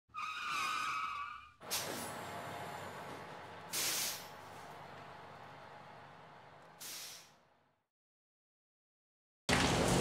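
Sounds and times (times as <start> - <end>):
high wavering brake squeal: 0.1 - 1.6
air brake hiss: 3.7 - 4.4, 6.8 - 7.4.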